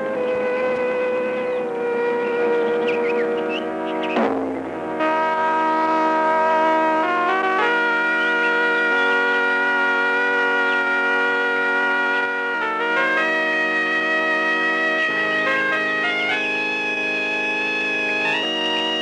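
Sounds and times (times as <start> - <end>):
film music with held chords: 0.0 - 19.0.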